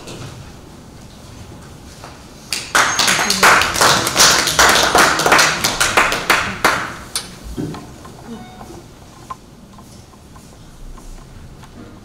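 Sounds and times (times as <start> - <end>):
audience applauding: 2.5 - 7.4.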